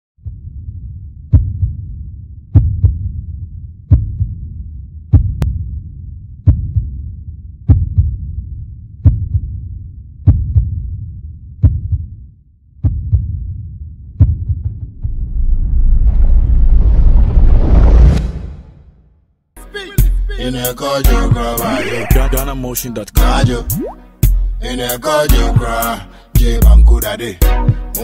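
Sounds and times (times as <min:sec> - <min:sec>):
deep heartbeat thuds: 0:00.2 - 0:12.2, 0:12.8 - 0:15.7, 0:21.1 - 0:24.6
low rumble: 0:13.2 - 0:19.1.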